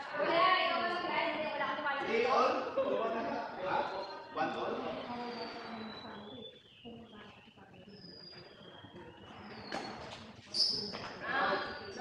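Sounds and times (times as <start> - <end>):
court shoes squeaking on floor: 9.3 - 11.8.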